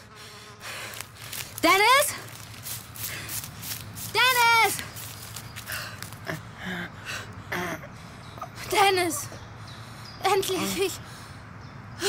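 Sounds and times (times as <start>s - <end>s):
faint footsteps: 0.6s - 6.4s
rustling: 0.7s - 6.2s
woman calling out loudly: 4.1s - 4.9s.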